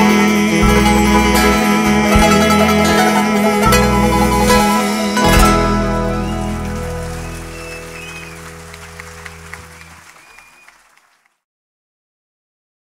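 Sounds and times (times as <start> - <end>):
live band chord ringing: 0.0 - 10.0
audience applauding: 3.6 - 11.4.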